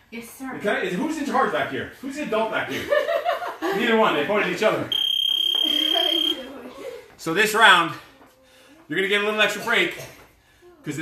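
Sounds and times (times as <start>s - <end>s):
long high electronic beep: 4.9s - 6.4s.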